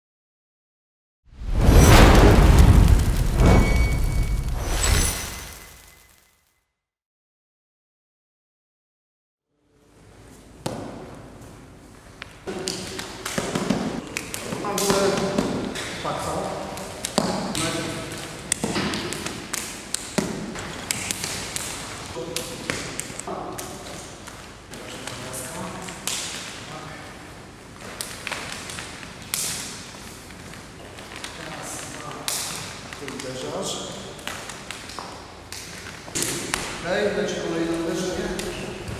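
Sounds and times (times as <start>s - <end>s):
man talking: 14.5s - 15.4s, 33.0s - 34.0s, 36.8s - 38.9s.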